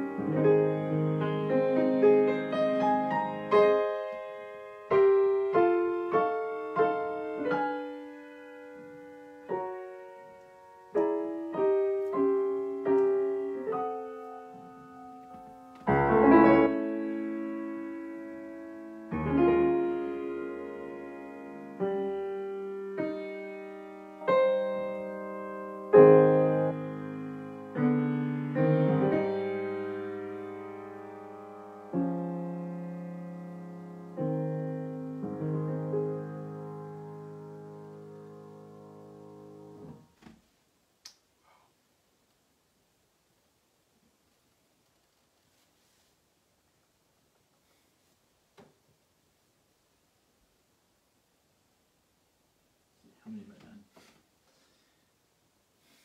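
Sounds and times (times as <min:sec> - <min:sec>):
grand piano chords: 0:00.0 - 0:40.2.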